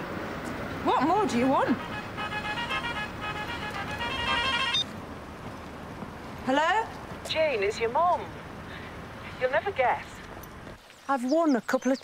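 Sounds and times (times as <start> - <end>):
mobile phone ringtone: 2.2 - 4.9.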